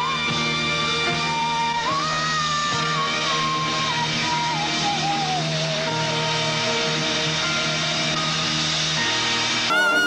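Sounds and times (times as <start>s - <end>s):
live band sustained chord: 6.6s - 10.0s.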